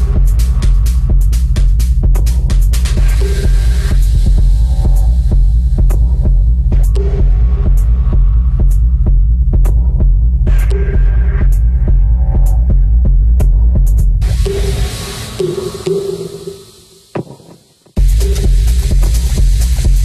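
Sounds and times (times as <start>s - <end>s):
pulsing bass drone: 0.0s - 16.6s
bright hiss-like wash: 14.2s - 18.0s.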